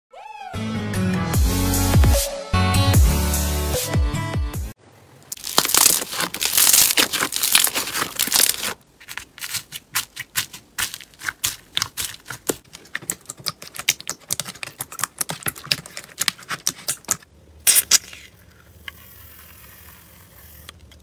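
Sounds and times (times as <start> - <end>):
slime crackling: 5.3 - 18.3.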